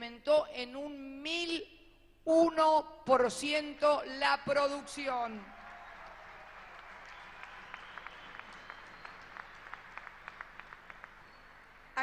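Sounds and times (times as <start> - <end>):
audience applauding: 5.4 - 12.0.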